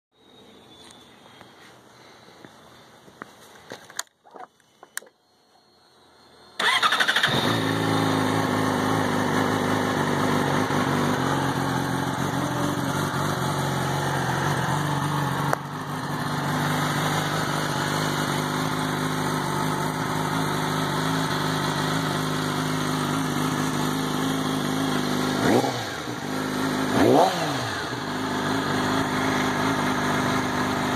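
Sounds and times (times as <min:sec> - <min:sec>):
engine revving: 0:06.6 - 0:30.9
motorcycle engine idling: 0:06.6 - 0:30.9.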